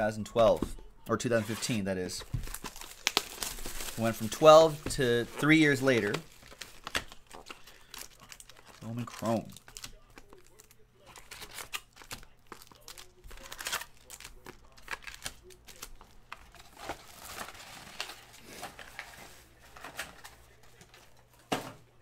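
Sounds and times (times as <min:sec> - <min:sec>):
foil wrappers crinkling: 0:01.6 - 0:21.6.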